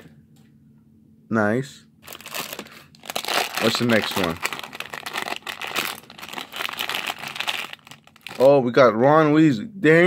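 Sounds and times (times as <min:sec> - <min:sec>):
plastic bag crinkling: 0:02.0 - 0:08.6.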